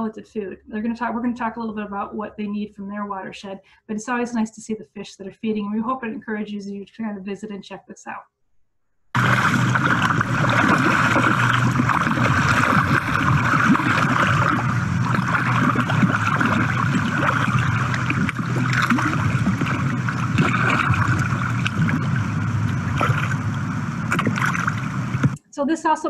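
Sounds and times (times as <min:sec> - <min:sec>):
fish splashing in pond water: 0:09.2 - 0:25.4
rushing water: 0:09.2 - 0:25.4.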